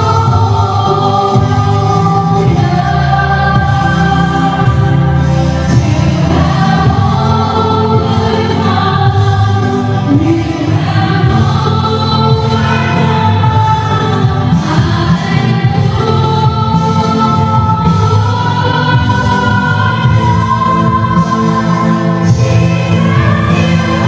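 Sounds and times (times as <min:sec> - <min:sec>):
worship band with singing: 0:00.0 - 0:24.0.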